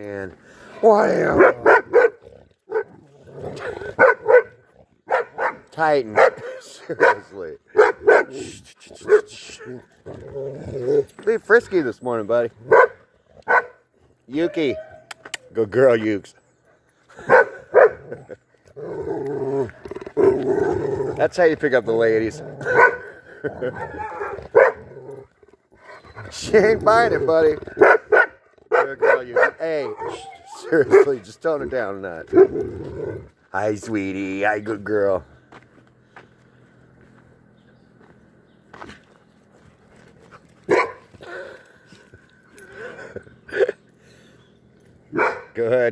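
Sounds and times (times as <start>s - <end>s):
dogs play growling: 0.3s - 5.8s, 9.0s - 11.8s, 12.5s - 14.3s, 16.5s - 28.8s, 29.7s - 33.6s, 38.7s - 45.2s
dog barks: 1.3s - 3.0s, 3.6s - 8.4s, 9.0s - 9.8s, 12.6s - 13.8s, 14.4s - 15.2s, 17.2s - 18.2s, 22.6s - 23.1s, 23.7s - 24.9s, 27.7s - 31.2s, 32.3s - 32.6s, 40.7s - 41.1s, 45.1s - 45.6s.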